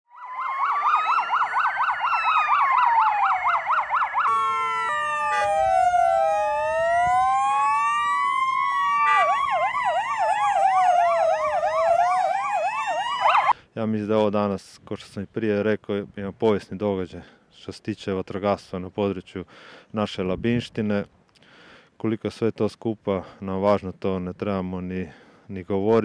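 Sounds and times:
fire vehicle sirens yelping and wailing: 0.1s - 13.6s.

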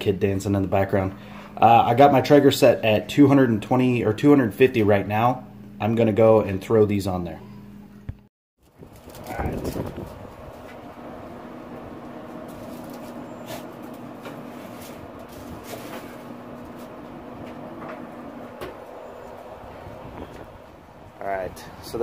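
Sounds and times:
grill humming: 0.0s - 22.0s.

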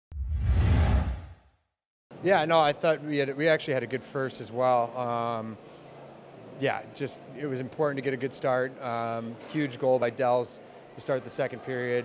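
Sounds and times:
whoosh with deep rumble: 0.1s - 1.4s.

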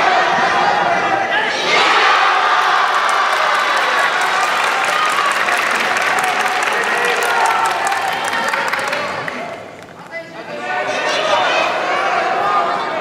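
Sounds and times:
people clapping: 2.4s - 10.2s.

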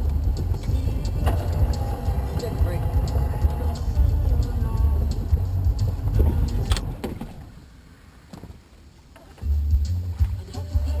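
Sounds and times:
boat engine rumble: 0.0s - 7.9s.

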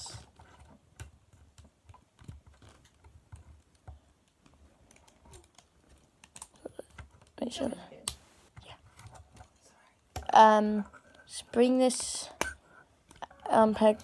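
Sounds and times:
plastic toy parts clicking: 3.8s - 7.4s.

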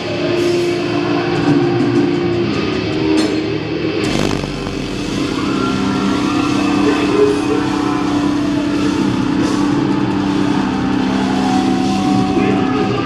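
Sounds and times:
heavy bass rumble: 0.0s - 13.0s
metalcore band playing live: 0.0s - 13.0s.

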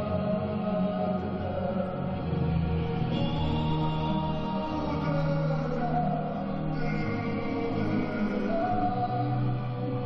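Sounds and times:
choral music: 0.0s - 10.0s.

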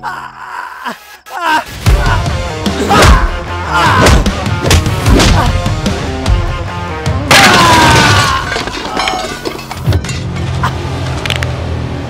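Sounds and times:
debris shattering crash: 7.3s - 10.6s.

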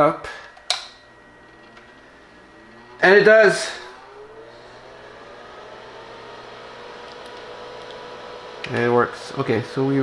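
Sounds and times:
computer hum and hiss: 0.0s - 10.0s.

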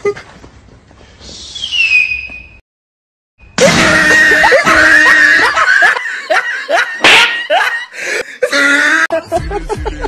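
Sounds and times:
whistling rocket firework: 1.3s - 2.6s.

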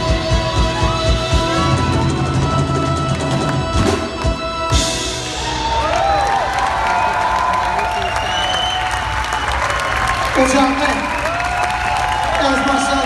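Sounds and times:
drums and cymbals: 0.0s - 6.2s
audience applauding and cheering: 0.0s - 13.0s.

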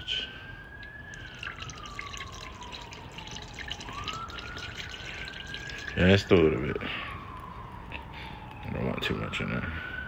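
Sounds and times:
siren wailing: 0.0s - 10.0s
liquid trickling through a funnel: 0.6s - 6.8s.

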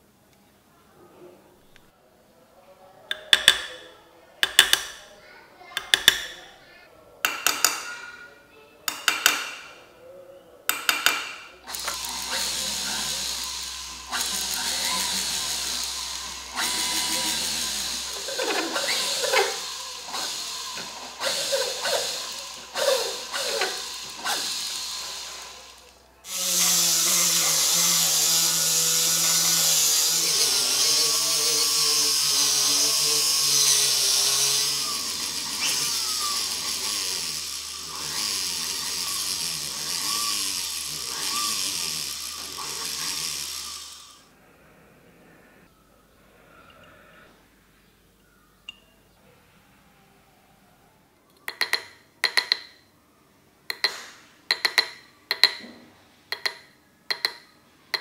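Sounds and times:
rotary handpiece high-pitched whine: 11.6s - 44.3s.

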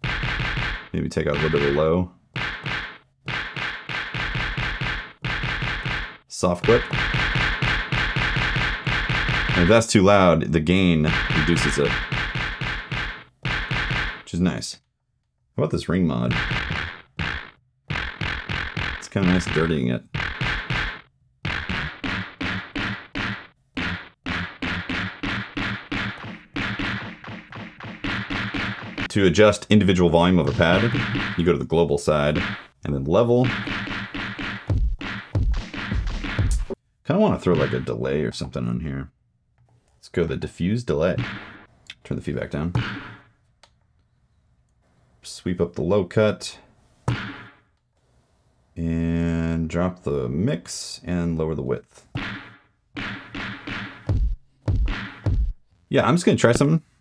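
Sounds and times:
rapid drum sample hits: 0.0s - 9.9s, 11.1s - 14.3s, 16.3s - 29.4s, 30.4s - 31.6s, 32.3s - 32.8s, 33.4s - 36.8s, 37.5s - 37.9s, 41.2s - 41.7s, 52.2s - 55.6s.

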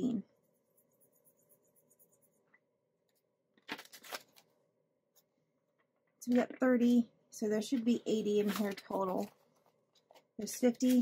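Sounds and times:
marker scratching on card: 0.4s - 2.5s
paper banknotes rustling: 3.6s - 4.5s, 8.3s - 11.0s.

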